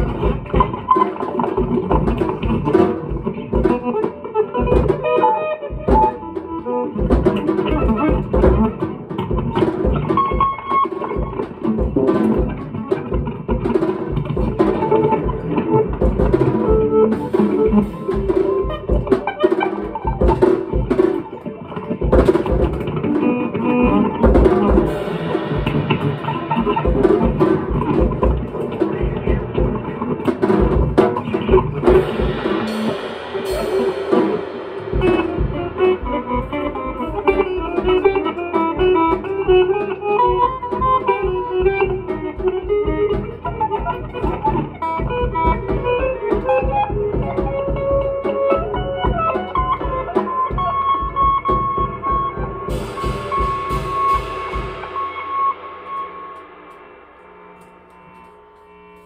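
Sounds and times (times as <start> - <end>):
drum kit: 0.0 - 59.0
electric guitar: 0.0 - 59.0
cymbals ringing: 24.2 - 39.8, 51.1 - 59.0.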